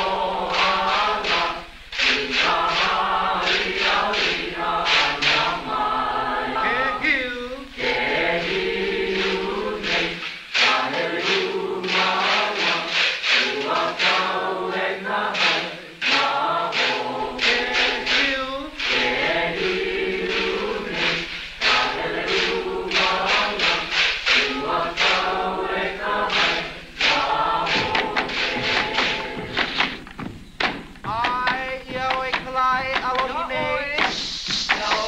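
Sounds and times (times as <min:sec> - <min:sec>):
group chanting in unison: 0:00.0 - 0:30.0.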